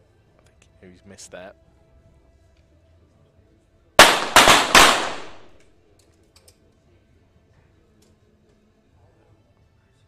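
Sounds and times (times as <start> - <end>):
pistol shots with echo: 4.0 - 5.6.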